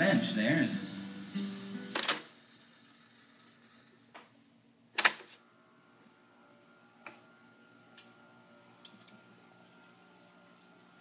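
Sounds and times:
faint machine hum: 0.0 - 11.0
tape deck lever clicks: 1.9 - 2.3, 5.0 - 5.3.

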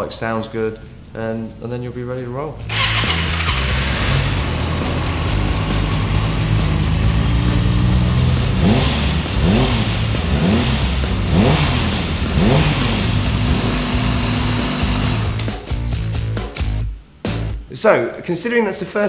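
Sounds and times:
motorcycle engine idling and revving: 2.7 - 15.5.

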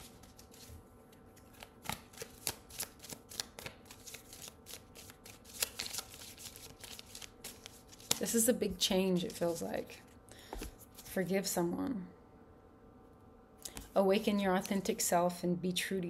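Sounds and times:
cards being shuffled: 0.0 - 8.5, 9.2 - 11.2.

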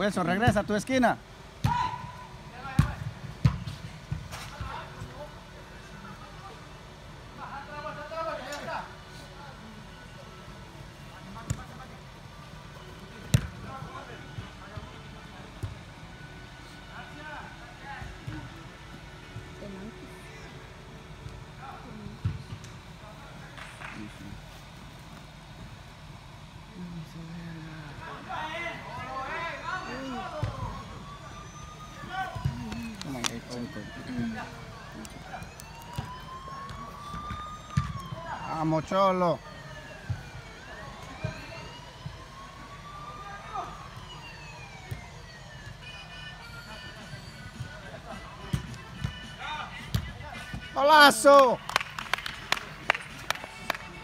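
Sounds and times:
distant players shouting: 1.6 - 2.4
ball kicks and thuds: 2.7 - 4.8, 13.3 - 13.6, 22.2 - 22.7, 32.3 - 32.7, 36.7 - 38.0, 48.5 - 49.1, 49.9 - 50.2.

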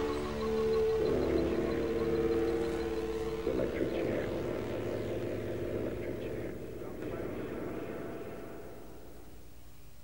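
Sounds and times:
electronic drone: 0.0 - 8.8.

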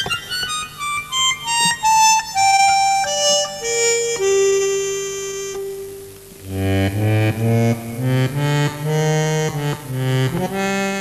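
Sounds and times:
piano accordion playing: 0.0 - 11.0.

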